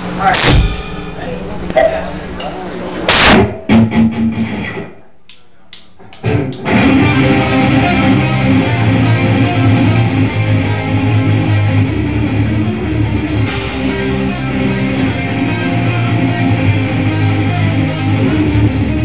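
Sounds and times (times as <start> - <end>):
cymbals struck on beat: 0.2 - 3.8
loud cymbal crash: 0.3 - 1.7, 3.1 - 3.6
live rock band: 3.1 - 4.9, 6.2 - 19.0.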